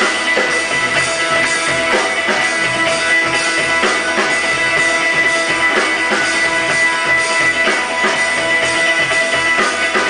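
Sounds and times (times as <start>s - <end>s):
drum kit beat: 0.0s - 10.0s
electric guitars: 0.0s - 10.0s.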